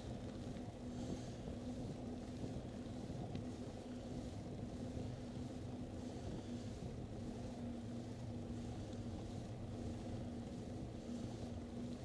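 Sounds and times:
faint steady hum: 0.0s - 12.0s
wind rush on microphone: 0.0s - 12.0s.

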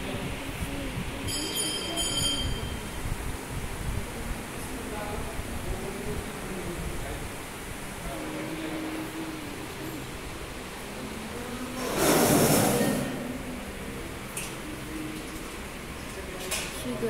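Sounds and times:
indistinct voices: 4.0s - 17.0s
loud rushing noise: 11.8s - 13.8s.

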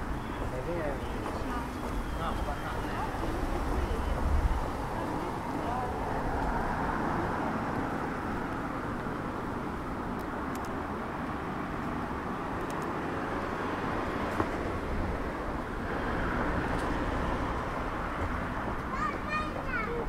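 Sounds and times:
distant traffic rumble: 0.0s - 20.0s
sharp click: 10.2s - 10.8s.

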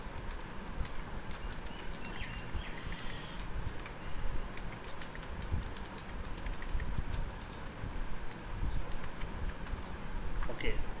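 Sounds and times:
low room hum: 0.0s - 11.0s
keyboard and mouse clicks: 0.1s - 10.6s
faint high chirping: 1.3s - 5.4s, 9.8s - 10.2s.

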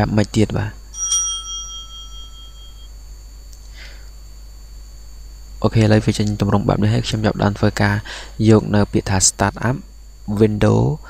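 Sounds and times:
low electrical hum: 0.0s - 11.0s
bell-like ringing tone: 0.9s - 3.0s.

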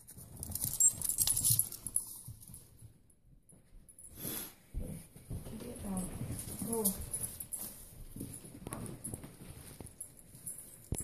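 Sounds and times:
animals scuffling on carpet: 4.1s - 11.0s.

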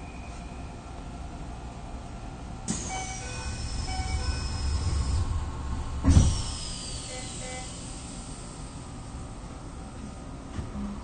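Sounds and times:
train door whine falling in pitch: 2.7s - 5.3s, 6.0s - 8.1s
train doors thumping shut: 5.9s - 7.9s.

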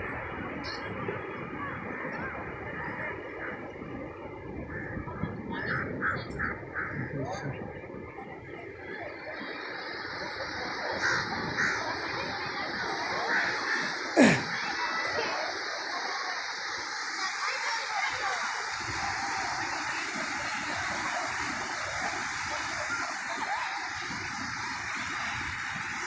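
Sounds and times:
voices of people: 5.3s - 26.0s
surf washing on shore: 8.6s - 26.0s.

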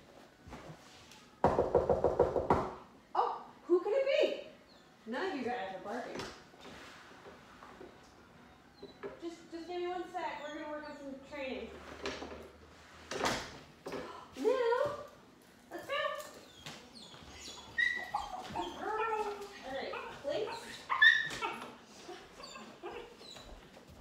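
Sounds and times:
dogs whining and yipping: 8.5s - 11.4s, 16.4s - 24.0s.

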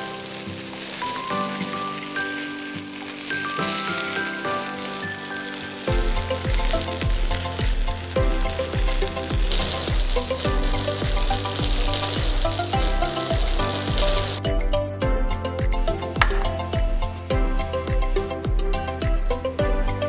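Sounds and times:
fish sizzling in oil: 0.0s - 14.4s
spatula stirring in pan: 0.0s - 14.4s
background music with bass and drums: 5.9s - 20.0s.

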